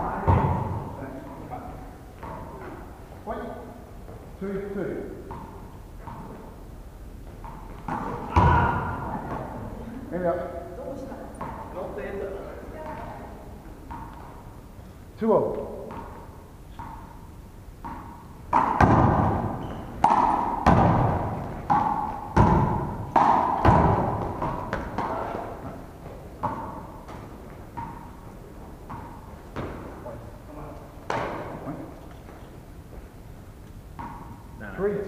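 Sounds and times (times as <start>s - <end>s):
handball hits echoing: 0.0s - 6.6s, 7.2s - 9.9s, 11.3s - 14.6s, 15.3s - 33.0s, 33.9s - 34.7s.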